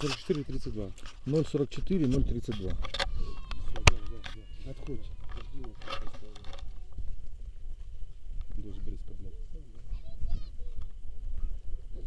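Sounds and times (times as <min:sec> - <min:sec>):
wind rumbling on microphone: 0:00.1 - 0:12.0.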